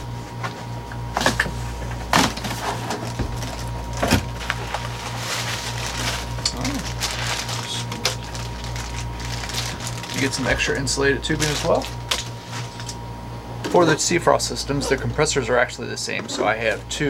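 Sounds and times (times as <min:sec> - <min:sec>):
steady low hum: 0:00.0 - 0:17.0
crinkling plastic rustle: 0:02.2 - 0:12.9.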